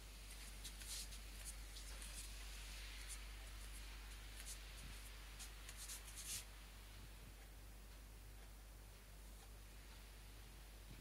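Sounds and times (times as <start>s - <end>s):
faint low hum: 0.0s - 11.0s
cat claws scratching towel: 0.3s - 6.5s.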